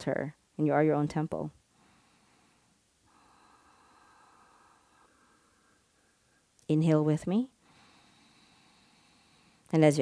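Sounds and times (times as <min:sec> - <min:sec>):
faint breathing through nose: 0:01.7 - 0:06.6, 0:07.6 - 0:09.7.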